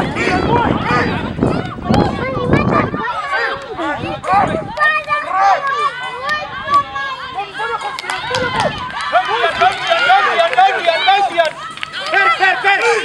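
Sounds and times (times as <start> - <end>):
many voices shouting: 0.0 - 13.0.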